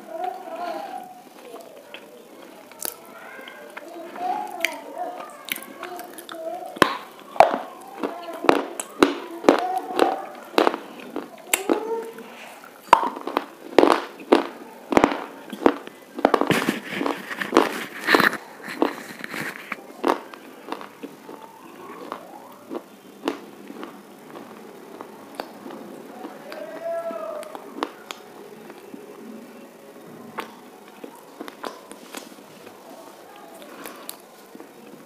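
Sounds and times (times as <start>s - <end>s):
crunchy bar being chewed: 0.2s - 29.0s, 30.4s - 32.8s.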